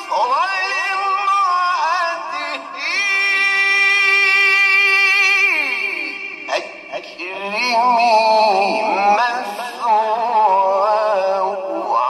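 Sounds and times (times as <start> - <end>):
man reciting melodically: 0.0 - 12.0.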